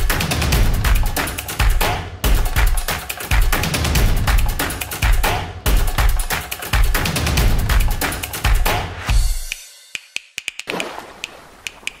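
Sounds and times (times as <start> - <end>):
irregular sharp clicks: 9.5 - 12.0.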